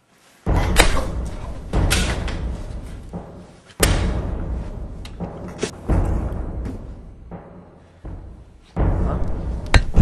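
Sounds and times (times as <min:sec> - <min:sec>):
heavy booming thuds: 0:00.5 - 0:10.0.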